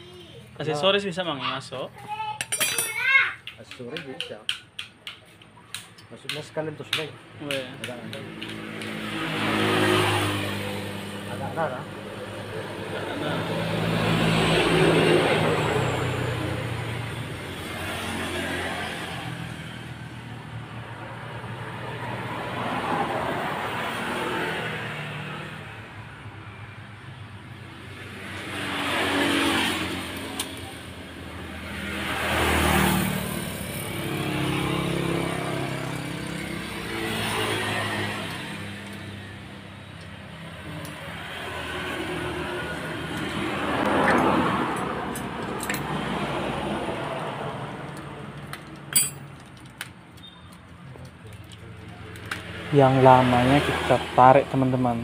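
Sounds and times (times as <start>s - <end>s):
road vehicles passing: 0.0s - 55.0s.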